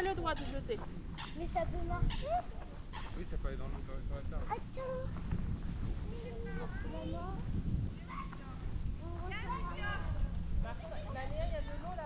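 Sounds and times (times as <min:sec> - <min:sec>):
people talking: 0:06.0 - 0:12.0.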